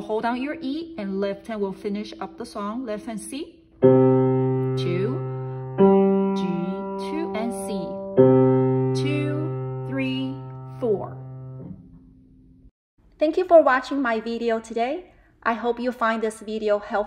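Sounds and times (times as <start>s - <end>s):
piano low notes ringing: 0.0s - 12.7s.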